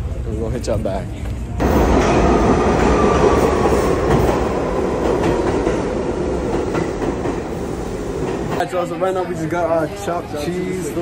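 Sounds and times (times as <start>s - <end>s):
subway train moving: 0.0s - 11.0s.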